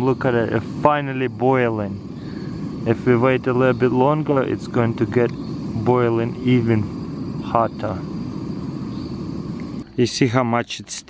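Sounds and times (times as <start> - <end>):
gas stove burner rushing: 0.0 - 11.0.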